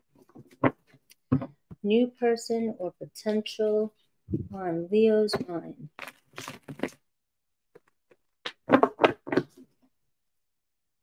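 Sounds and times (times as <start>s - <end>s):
cards being shuffled: 5.3s - 7.0s.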